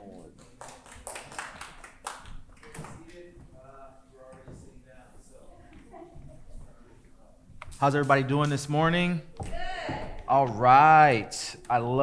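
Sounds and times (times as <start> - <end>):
scattered hand claps: 0.3 - 3.3.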